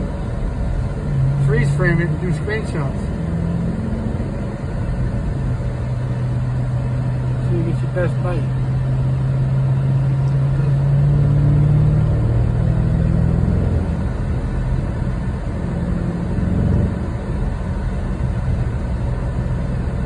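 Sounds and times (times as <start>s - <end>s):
car engine accelerating: 0.0s - 20.0s
road noise: 0.0s - 20.0s.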